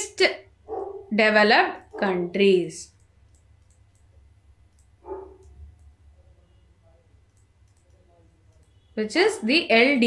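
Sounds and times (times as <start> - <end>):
low steady hum: 0.0 - 10.0
stylus clicking on tablet: 2.8 - 6.0, 7.2 - 8.8.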